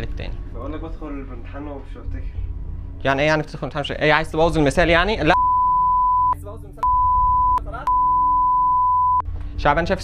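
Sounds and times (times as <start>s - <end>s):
censor bleep tone: 5.4s - 9.2s.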